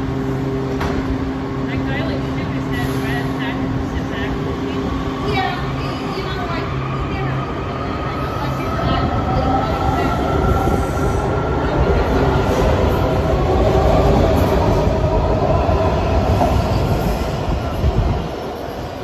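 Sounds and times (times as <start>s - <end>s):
subway train passing: 0.0s - 19.0s.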